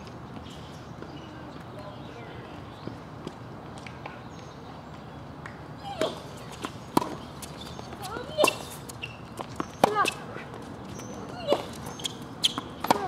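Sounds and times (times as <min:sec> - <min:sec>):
tennis ball bouncing: 0:05.4 - 0:10.2, 0:11.3 - 0:13.0
shoe squeaks: 0:05.9 - 0:13.0
racket hitting tennis ball: 0:06.0 - 0:09.0, 0:09.6 - 0:10.2, 0:11.4 - 0:13.0.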